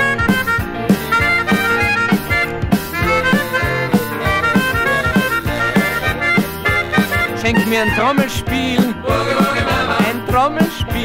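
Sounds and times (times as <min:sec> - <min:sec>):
bouncing bass and rhythm beat: 0:00.0 - 0:11.0
reedy free-reed lead melody: 0:00.0 - 0:11.0.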